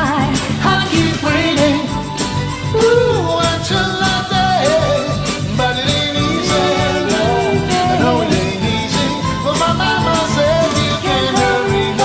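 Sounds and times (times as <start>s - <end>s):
karaoke backing track: 0.0s - 12.0s
voices singing a pop song: 0.0s - 12.0s.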